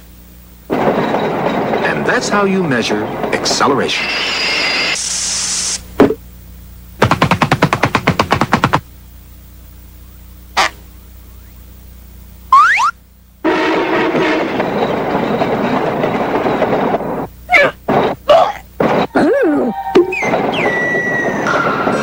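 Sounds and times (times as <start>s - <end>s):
fast run of clicks: 7.0s - 8.8s
quick rising whistle: 19.6s - 22.0s.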